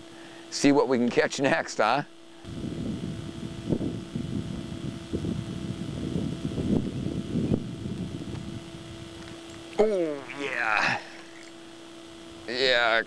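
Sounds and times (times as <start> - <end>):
steady low hum: 0.0 - 13.0
wind buffeting microphone: 2.4 - 9.7.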